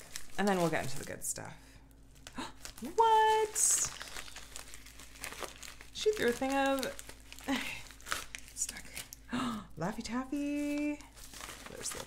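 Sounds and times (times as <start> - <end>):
plastic envelope crinkling: 0.0 - 9.3, 10.0 - 12.0.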